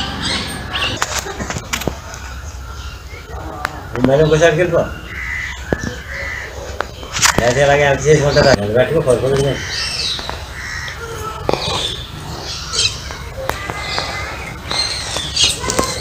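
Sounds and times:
people talking: 0:00.0 - 0:16.0
crows cawing: 0:02.0 - 0:16.0.

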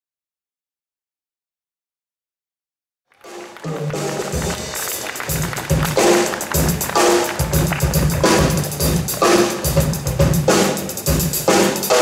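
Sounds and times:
drum kit: 0:03.2 - 0:12.0.

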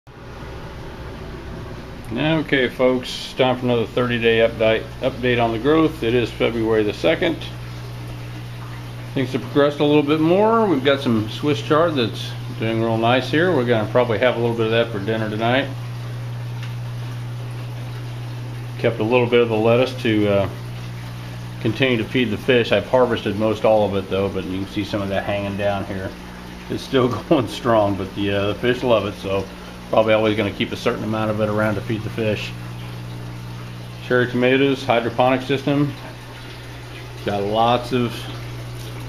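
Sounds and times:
low electrical hum: 0:00.1 - 0:39.0
water draining hiss: 0:00.7 - 0:39.0.

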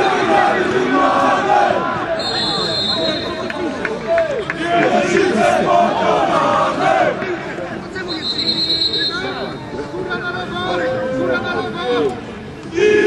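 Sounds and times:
people shouting: 0:12.8 - 0:13.0.

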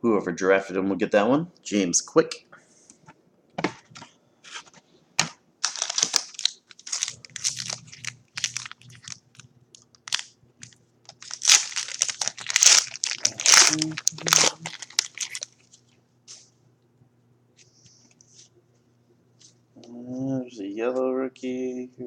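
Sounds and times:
foil wrapper tearing: 0:05.6 - 0:10.4, 0:11.1 - 0:15.6
foil wrapper crinkling: 0:05.6 - 0:15.8.

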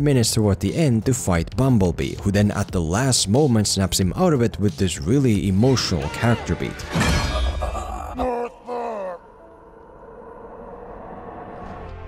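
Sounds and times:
person groaning: 0:07.3 - 0:09.4.

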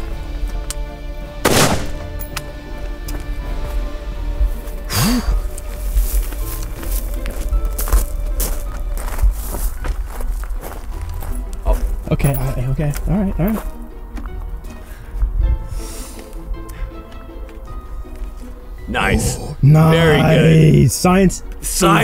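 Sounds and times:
background music: 0:00.0 - 0:22.0
rifle shot: 0:01.4 - 0:02.2.

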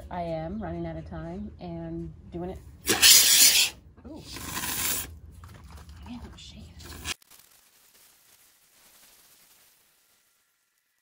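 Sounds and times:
spray foam can sputtering: 0:02.9 - 0:03.7, 0:04.3 - 0:05.1
faint foam crackle: 0:04.3 - 0:11.0.

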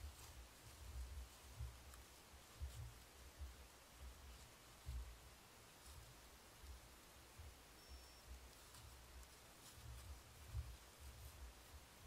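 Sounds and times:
faint steady hiss: 0:00.0 - 0:12.0
soft low thumps: 0:00.0 - 0:12.0
faint high-pitched tone: 0:07.7 - 0:08.4.

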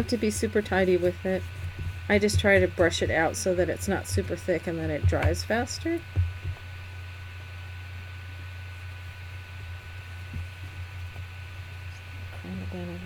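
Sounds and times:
electrical hum and hiss: 0:00.0 - 0:13.0.

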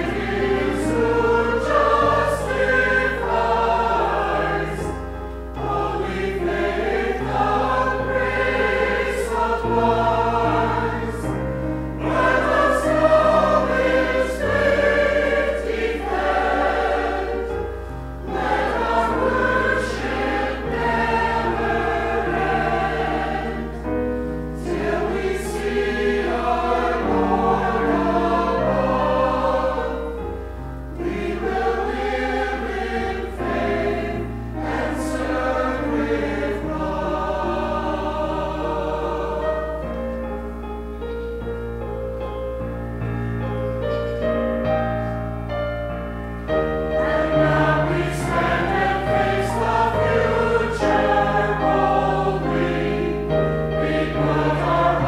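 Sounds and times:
mixed choir singing: 0:00.0 - 0:41.4, 0:46.4 - 0:55.0
keyboard accompaniment: 0:00.0 - 0:55.0.

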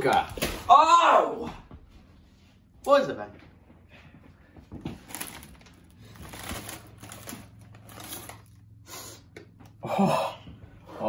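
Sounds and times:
packaging rustling and crinkling: 0:04.8 - 0:08.7.

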